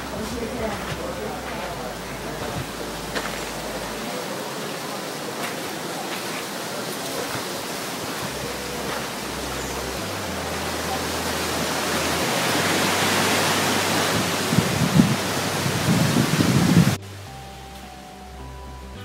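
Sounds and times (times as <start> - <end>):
background music: 0.0 - 4.5, 8.1 - 19.0
wind buffeting microphone: 0.0 - 17.0.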